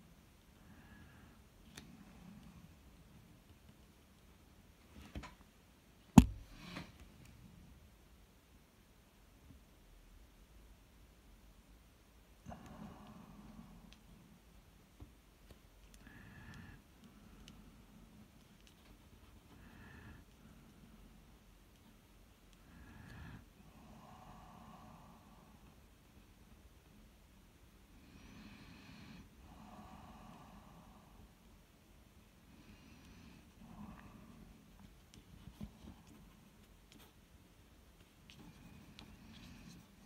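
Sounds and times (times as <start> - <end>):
faint breathing: 0.4 - 3.1, 12.4 - 14.6, 15.5 - 27.0, 27.8 - 40.0.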